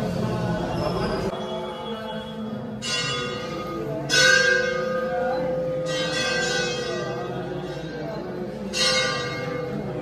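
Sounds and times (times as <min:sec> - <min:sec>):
metal temple bell ringing: 0:02.8 - 0:10.0.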